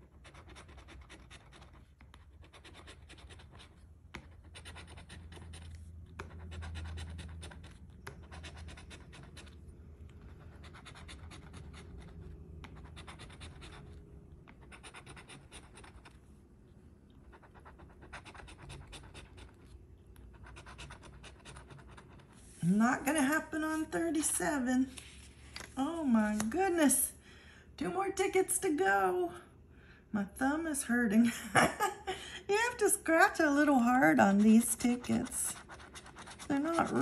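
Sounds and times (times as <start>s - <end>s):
coin scratching lottery ticket: 10.5s - 14.0s, 34.2s - 37.0s.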